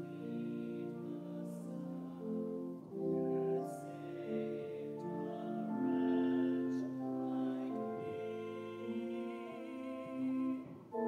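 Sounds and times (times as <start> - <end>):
hymn singing: 0.0 - 11.0.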